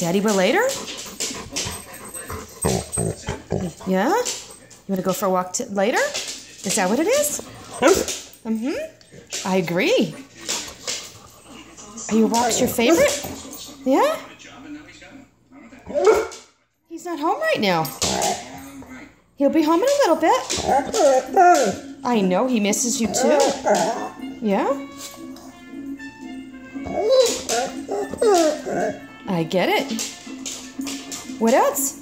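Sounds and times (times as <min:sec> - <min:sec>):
dog vocalizing: 0:00.6 - 0:04.7, 0:23.0 - 0:24.2, 0:26.8 - 0:29.0
dog low grumble: 0:02.3 - 0:04.0.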